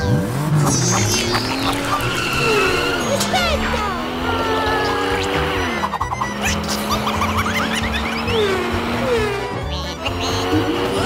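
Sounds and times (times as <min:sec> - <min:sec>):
background music: 0:00.0 - 0:11.0
car engine sound effect: 0:00.0 - 0:11.0.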